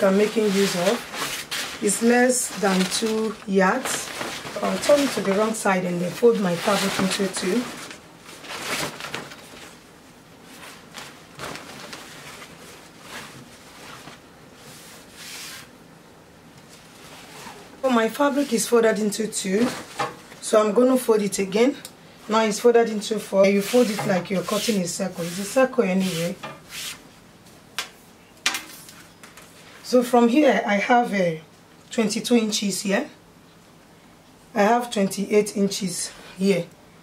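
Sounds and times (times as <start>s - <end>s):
fabric rustling: 0.0s - 15.8s, 22.3s - 27.1s.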